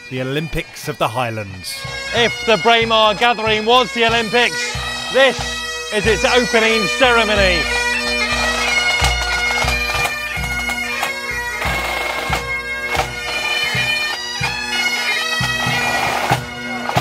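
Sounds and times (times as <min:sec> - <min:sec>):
bagpipes playing: 0:00.0 - 0:17.0.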